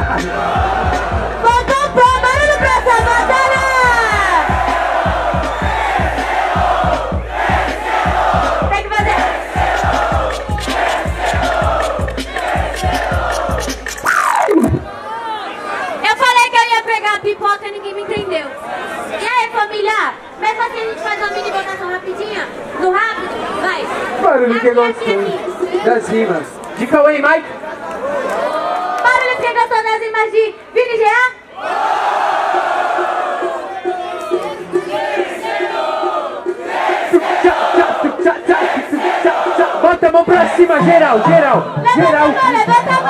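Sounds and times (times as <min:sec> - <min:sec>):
trap beat with kick drum: 0:00.0 - 0:14.0, 0:25.4 - 0:26.1, 0:32.5 - 0:43.0
crowd cheering and shouting: 0:00.0 - 0:16.6, 0:18.2 - 0:29.6, 0:31.5 - 0:43.0
speech over a microphone: 0:39.8 - 0:43.0.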